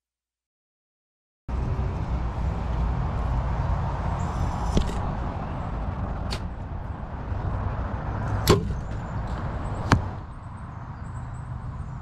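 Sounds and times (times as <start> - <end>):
arrows striking target: 4.2 - 5.3, 6.2 - 6.7, 8.3 - 10.2.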